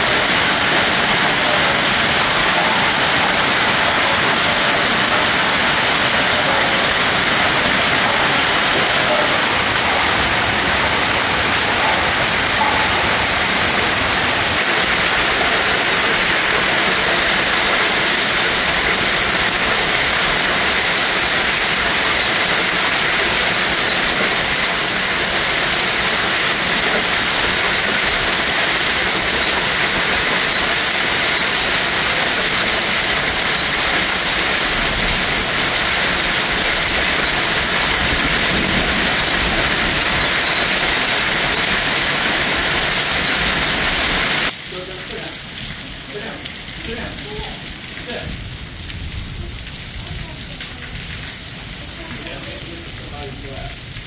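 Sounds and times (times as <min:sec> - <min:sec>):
torrential rain and hail: 0:00.0 - 0:54.0.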